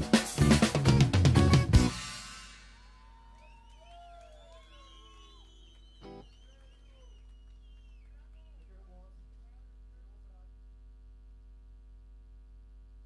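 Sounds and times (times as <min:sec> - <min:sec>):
amplifier hum: 0:07.0 - 0:13.0.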